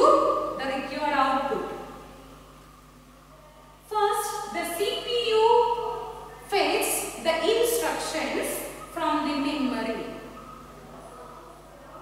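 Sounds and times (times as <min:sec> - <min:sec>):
woman speaking: 0:00.0 - 0:01.9, 0:03.8 - 0:10.3
faint steady low hum: 0:00.0 - 0:12.0.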